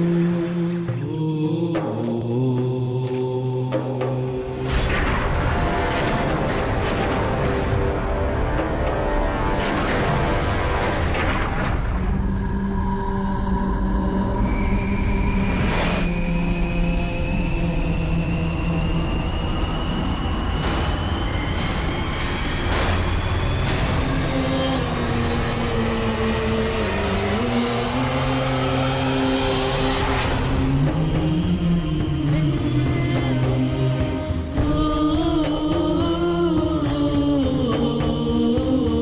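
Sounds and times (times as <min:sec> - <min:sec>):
wordless low chanting: 0:00.0 - 0:05.2, 0:11.9 - 0:21.4, 0:23.8 - 0:39.0
swell of noise: 0:00.0 - 0:34.2
sustained drone tones: 0:00.0 - 0:39.0.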